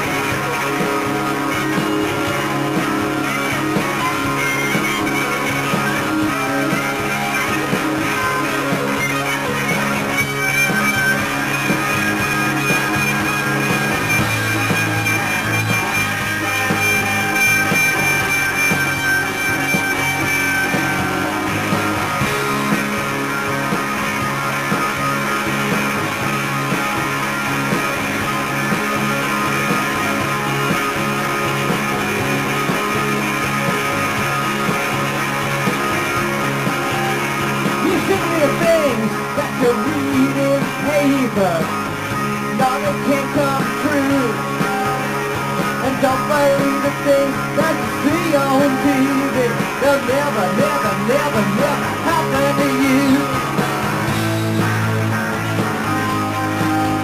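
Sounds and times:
bass guitar: 0:00.0 - 0:57.0
drums: 0:00.0 - 0:57.0
electric guitars: 0:00.0 - 0:57.0.

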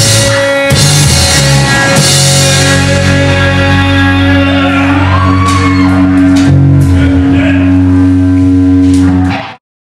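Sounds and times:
rock band holding a ringing chord: 0:00.0 - 0:09.6.

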